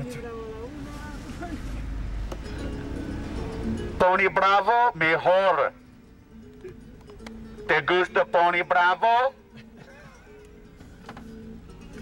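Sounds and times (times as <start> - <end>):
faint music: 0.0 - 12.0
road rumble inside van: 0.0 - 12.0.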